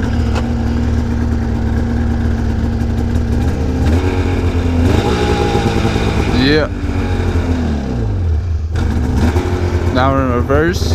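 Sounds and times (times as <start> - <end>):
snowmobile engine idling: 0.0 - 10.9.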